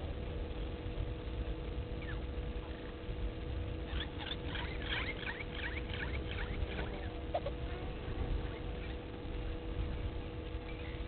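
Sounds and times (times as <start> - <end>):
low rumble: 0.0 - 11.0
steady low hum: 0.0 - 11.0
birds chirping: 2.0 - 3.0, 3.8 - 9.2, 10.4 - 11.0.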